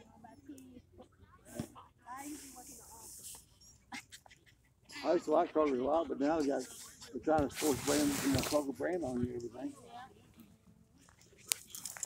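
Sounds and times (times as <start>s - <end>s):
light rustling in grass: 7.4s - 9.6s.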